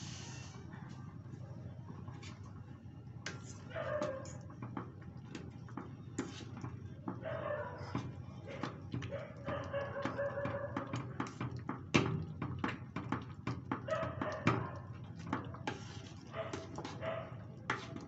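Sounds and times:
metal spoon scraping a pan: 3.3s - 4.5s, 15.5s - 17.0s, 17.6s - 18.0s.

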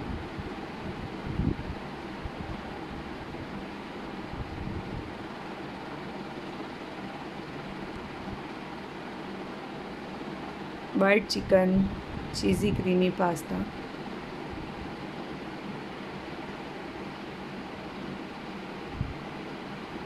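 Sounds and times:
steady background hiss: 0.0s - 20.0s
faint low hum: 10.8s - 20.0s.

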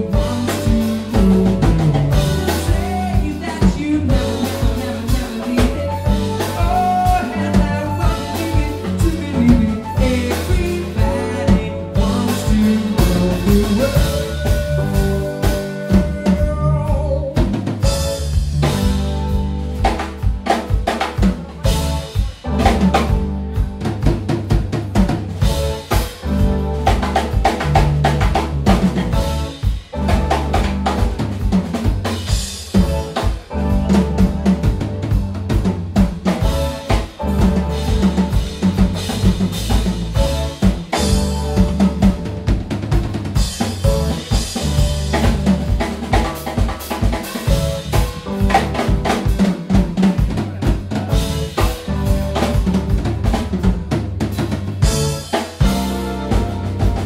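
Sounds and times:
drum kit snare and bass drum: 0.0s - 57.0s
jazz-rock band playing: 0.0s - 57.0s.

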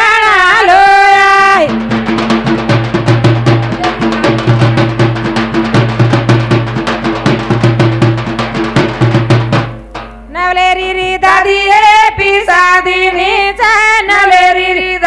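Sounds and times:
woman singing into a microphone: 0.0s - 1.7s, 10.3s - 15.0s
fast drum rhythm: 0.7s - 10.4s.

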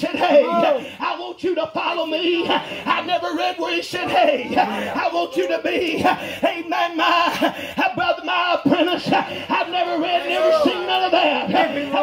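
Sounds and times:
man preaching over loudspeaker: 0.0s - 12.0s.

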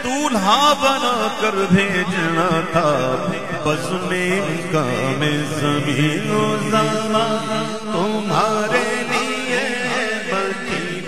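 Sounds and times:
men chanting a melody: 2.8s - 11.0s.

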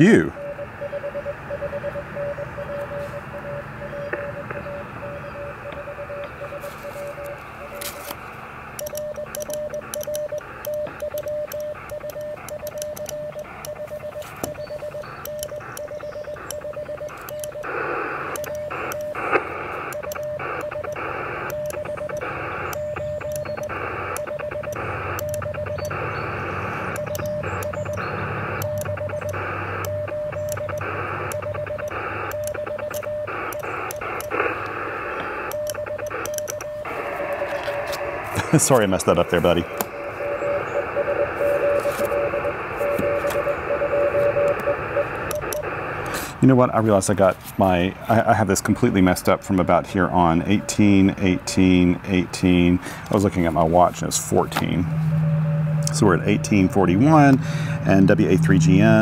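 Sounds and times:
morse code tone: 0.0s - 47.1s, 47.7s - 59.0s
receiver hiss: 0.0s - 59.0s.

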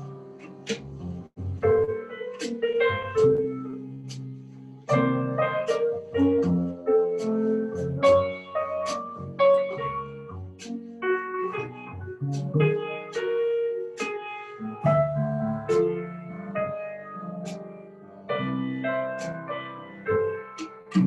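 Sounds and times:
drum kit strokes: 0.0s - 21.0s
grand piano chords and melody: 0.0s - 21.0s.

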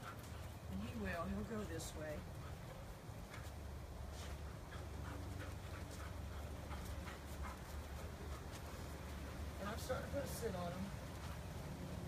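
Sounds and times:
dog panting: 0.0s - 9.4s.

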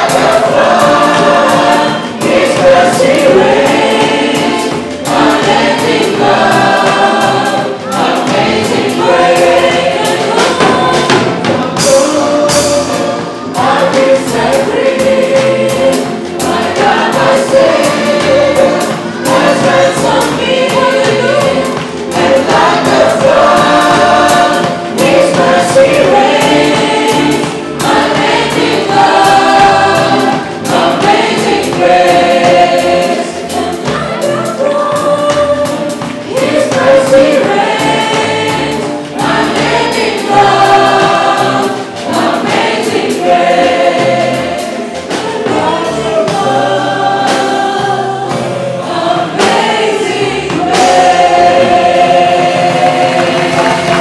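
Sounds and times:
band playing worship song: 0.0s - 54.0s
many voices singing together: 0.0s - 54.0s.

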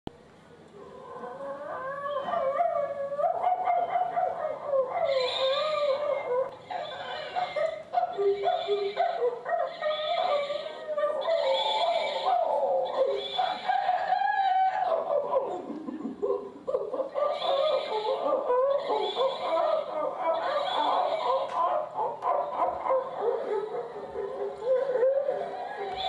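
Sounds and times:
voice whimpering and howling: 1.0s - 26.0s.

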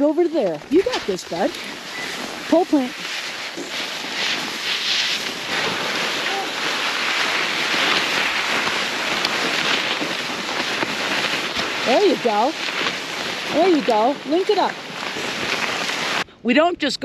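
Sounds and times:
skis scraping over snow: 0.0s - 16.3s
wind on microphone: 0.0s - 16.3s.

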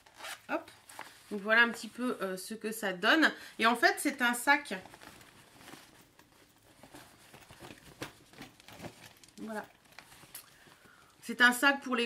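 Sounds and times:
fabric bag rustling: 0.0s - 2.1s, 3.6s - 11.4s.

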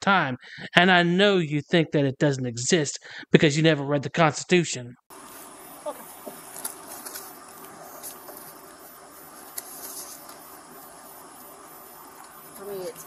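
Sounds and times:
faint clicks: 12.1s - 12.4s.

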